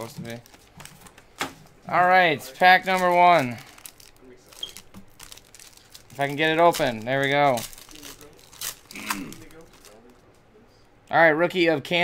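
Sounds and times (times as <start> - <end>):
foil wrapper crinkling: 0.0 - 1.2, 2.5 - 10.2
cards being handled: 2.8 - 10.4.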